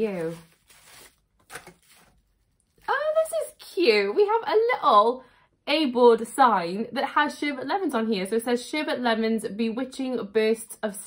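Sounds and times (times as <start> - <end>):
bubble wrap and cardboard rustling: 0.0 - 3.4.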